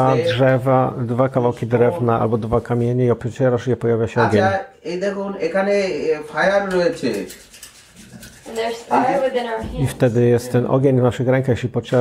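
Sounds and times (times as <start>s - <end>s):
person speaking: 0.0s - 3.3s, 3.9s - 4.7s.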